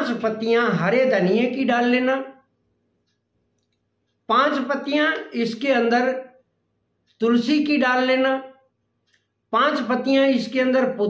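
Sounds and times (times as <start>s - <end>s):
man speaking: 0.0s - 2.5s, 4.3s - 6.4s, 7.2s - 8.7s, 9.5s - 11.0s.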